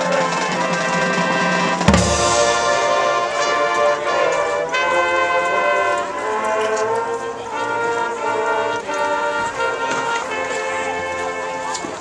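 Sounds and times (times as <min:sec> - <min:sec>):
brass held chords: 0:00.0 - 0:12.0
marching band playing: 0:00.0 - 0:12.0.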